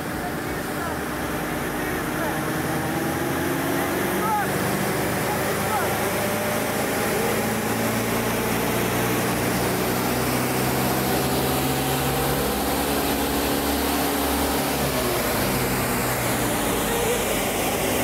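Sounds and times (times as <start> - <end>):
car engine running at high revs: 0.0 - 18.0.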